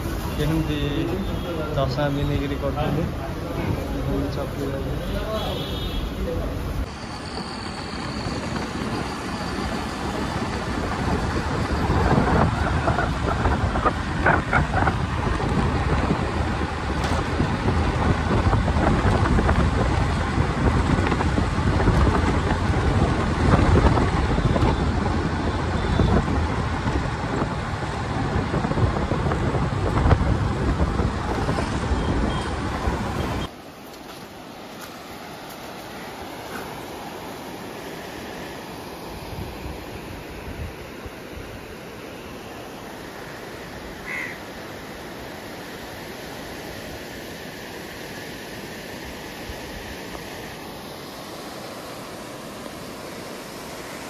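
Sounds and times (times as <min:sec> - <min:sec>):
wind and road noise: 0:00.0 - 0:54.0
river water over a weir: 0:06.6 - 0:54.0.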